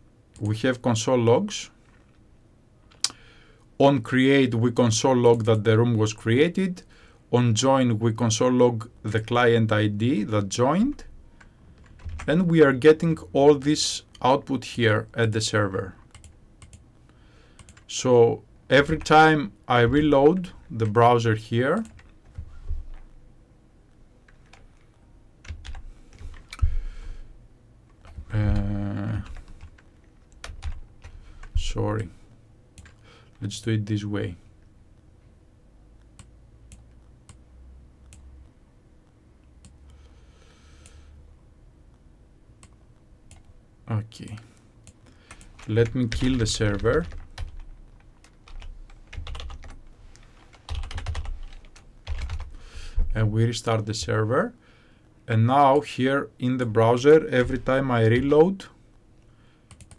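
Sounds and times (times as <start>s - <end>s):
computer keyboard keystrokes: 11.7s - 12.3s, 16.0s - 16.8s, 17.6s - 17.9s, 21.8s - 23.1s, 29.3s - 32.1s, 32.8s - 33.0s, 44.2s - 49.8s, 50.5s - 52.5s, 59.7s - 59.9s.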